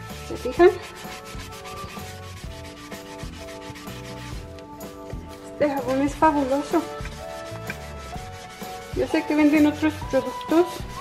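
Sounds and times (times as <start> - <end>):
background music: 0.0 - 11.0
wet sponge scrubbing sink: 0.0 - 11.0.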